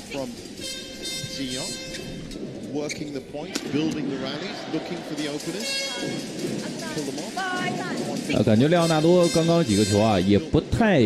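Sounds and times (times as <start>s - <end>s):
crowd voices: 0.0s - 11.0s
music: 5.1s - 10.0s.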